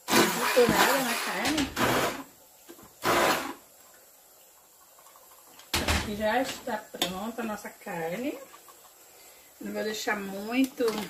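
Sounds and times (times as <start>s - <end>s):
stick blender grinding: 0.0s - 2.3s, 3.0s - 3.6s.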